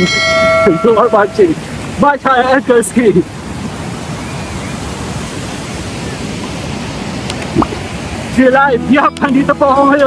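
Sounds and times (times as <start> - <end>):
waterfall rushing over rocks: 0.0 - 10.0.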